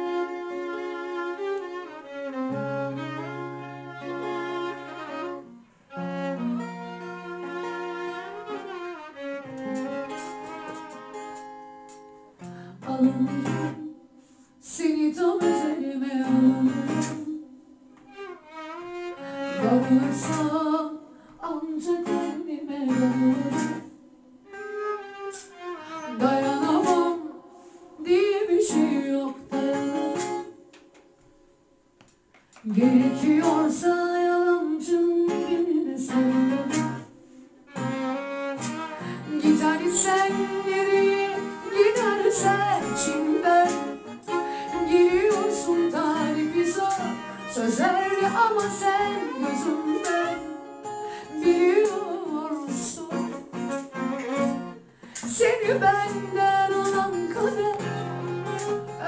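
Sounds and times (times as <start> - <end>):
violin melody: 0.0 - 12.1, 18.0 - 20.8, 22.9 - 27.4, 37.7 - 52.3, 53.0 - 54.9, 55.5 - 59.0
strummed acoustic guitar: 9.4 - 13.8, 15.1 - 17.5, 19.4 - 20.8, 21.8 - 31.4, 32.6 - 59.0.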